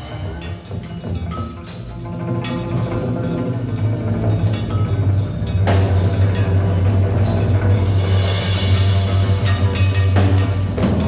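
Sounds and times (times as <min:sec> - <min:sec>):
busy drumming with cymbal hits: 0:00.0 - 0:11.0
free jazz trio playing: 0:00.0 - 0:11.0.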